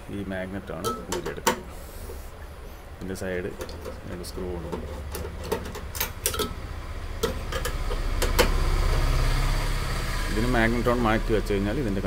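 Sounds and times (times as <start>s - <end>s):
low steady hum: 0.0s - 12.0s
metallic clicks and taps: 3.6s - 6.5s.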